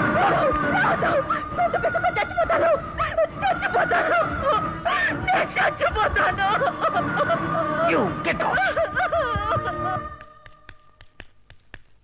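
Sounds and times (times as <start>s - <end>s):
person laughing: 8.5s - 10.1s.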